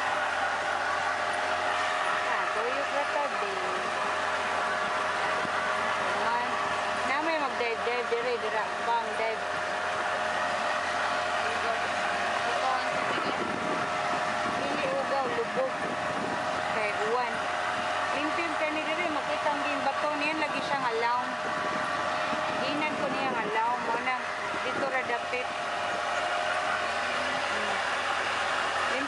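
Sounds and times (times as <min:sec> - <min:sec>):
motorboat engine droning: 0:00.0 - 0:29.0
voices chatting: 0:01.3 - 0:29.0.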